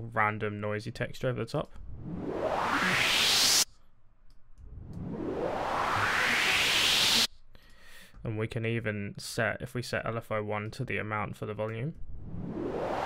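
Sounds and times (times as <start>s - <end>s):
white-noise riser sweep: 1.9s - 3.7s, 4.6s - 7.3s, 12.1s - 13.0s.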